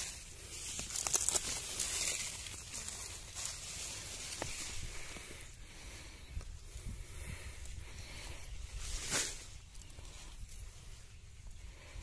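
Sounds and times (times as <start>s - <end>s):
corn leaves rustling: 0.0s - 5.3s, 8.7s - 10.7s.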